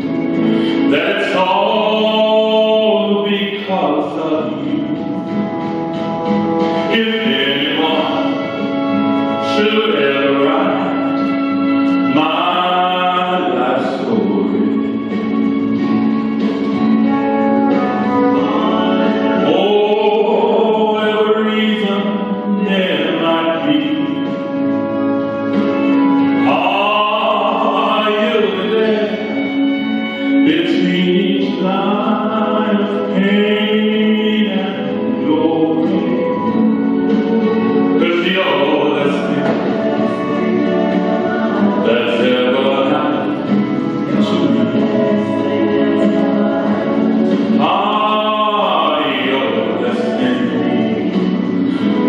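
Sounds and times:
man singing a long note: 0:00.6 - 0:05.1, 0:06.9 - 0:15.0, 0:18.0 - 0:24.5, 0:26.3 - 0:29.6, 0:30.3 - 0:52.0.

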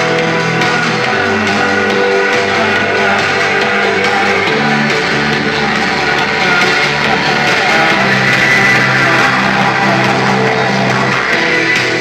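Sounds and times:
electric guitars ringing chords: 0:00.0 - 0:12.0.

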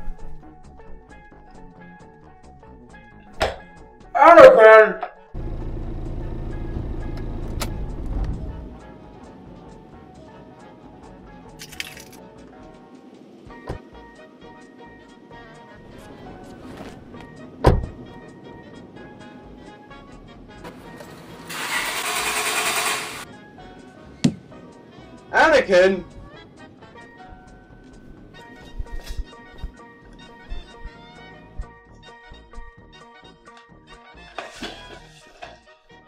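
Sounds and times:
car engine running: 0:05.4 - 0:08.7.

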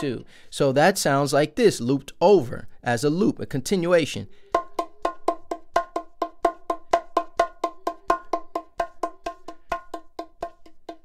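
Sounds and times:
bongos played with fingertips: 0:00.0 - 0:00.4, 0:04.3 - 0:11.0.

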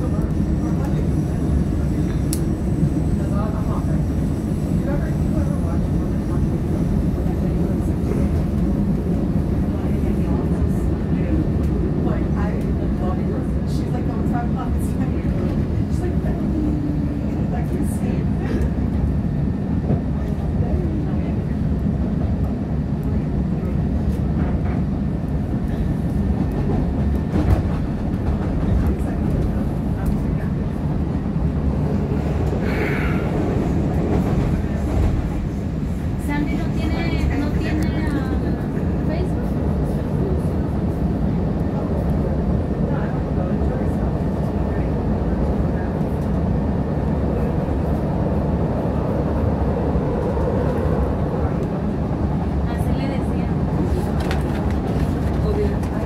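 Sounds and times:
train wheels rumbling: 0:00.0 - 0:56.0.

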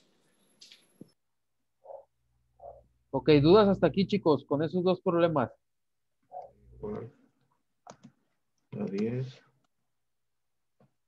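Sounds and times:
speech on video call: 0:01.8 - 0:09.6.

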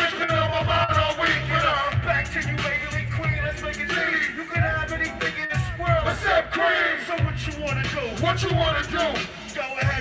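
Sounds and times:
crowd noise: 0:00.0 - 0:10.0
hip hop beat over loudspeakers: 0:00.0 - 0:10.0
voices shouting into microphones: 0:00.0 - 0:10.0.

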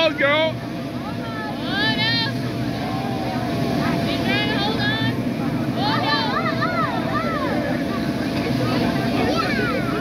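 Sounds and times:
motor low rumble: 0:00.0 - 0:10.0.

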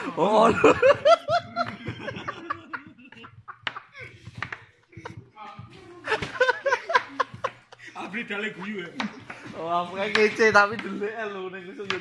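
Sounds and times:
person laughing: 0:00.0 - 0:08.1.

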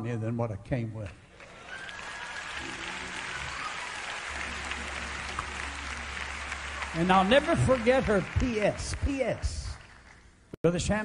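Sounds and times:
crowd clapping: 0:01.1 - 0:10.4.

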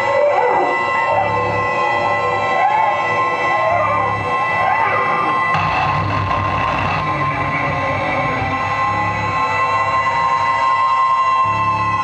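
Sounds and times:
gliding whine: 0:00.0 - 0:12.0
piercing electronic tones: 0:01.1 - 0:10.7
pulsing low rumble: 0:03.6 - 0:10.5.

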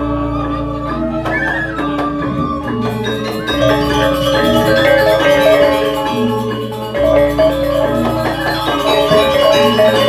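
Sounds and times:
gamelan music: 0:00.0 - 0:10.0.

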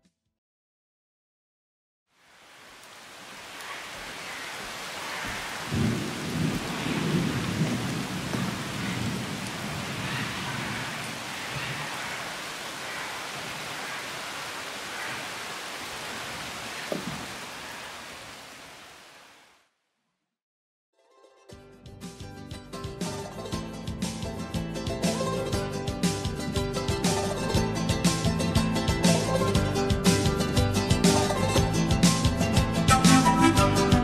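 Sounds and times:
heavy rain: 0:02.1 - 0:19.6
thunder rumbling: 0:05.1 - 0:15.2
sharp thunder crack: 0:05.7 - 0:11.9.

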